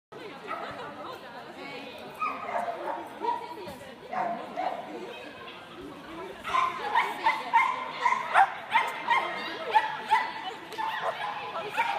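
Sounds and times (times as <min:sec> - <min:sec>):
people talking: 0:00.1 - 0:11.9.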